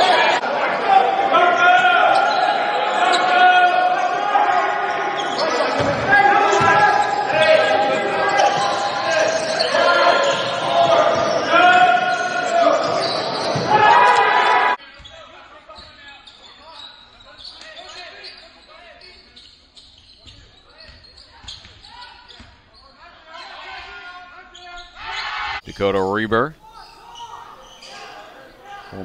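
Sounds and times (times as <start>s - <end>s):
loud voices in gymnasium: 0.0s - 29.0s.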